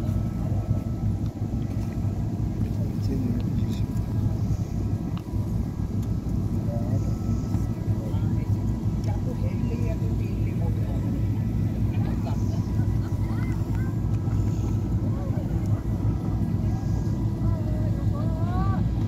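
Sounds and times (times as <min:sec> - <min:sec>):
boat engine rumbling: 0:00.0 - 0:19.0
faint distant voices: 0:00.0 - 0:19.0.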